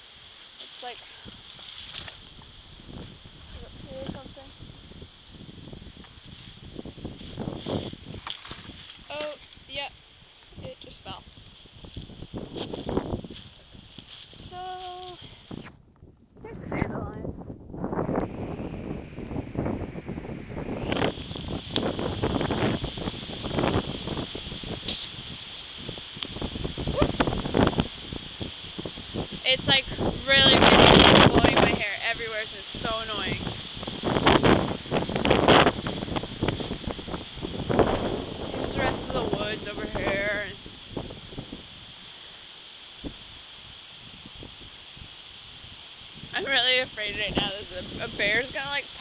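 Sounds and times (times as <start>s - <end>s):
wind buffeting microphone: 0.0s - 49.0s
footsteps on grass and leaves: 0.4s - 3.4s, 5.7s - 10.1s, 11.2s - 15.8s, 20.6s - 29.4s, 32.5s - 38.6s.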